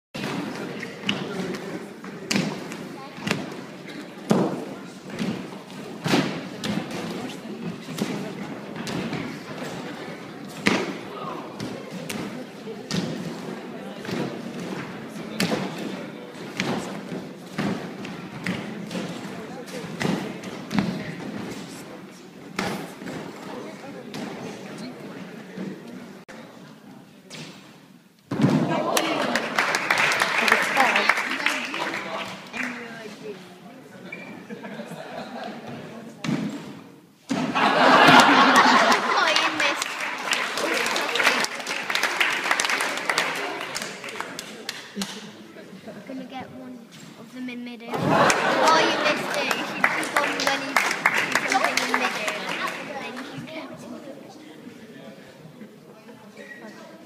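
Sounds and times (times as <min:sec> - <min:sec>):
murmur of voices: 0:00.1 - 0:57.0.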